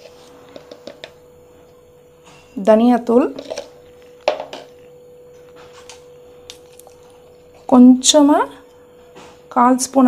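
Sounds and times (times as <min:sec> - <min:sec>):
high-pitched hum: 0:00.0 - 0:10.0.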